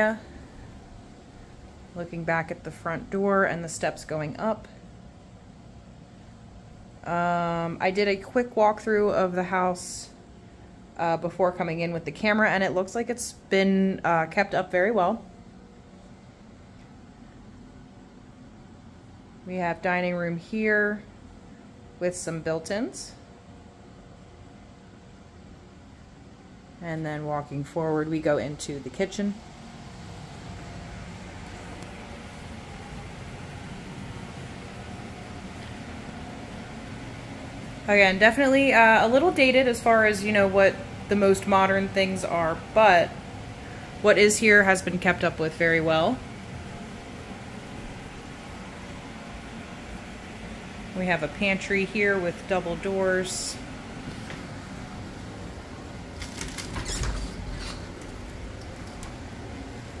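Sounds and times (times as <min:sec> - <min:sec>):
room tone rumble and hiss: 0:00.0 - 1:00.0
door clicks and rattles: 0:56.2 - 0:59.2.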